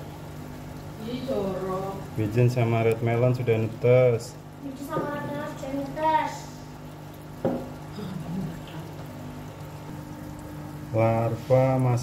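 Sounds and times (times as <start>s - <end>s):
aquarium equipment humming: 0.0s - 12.0s.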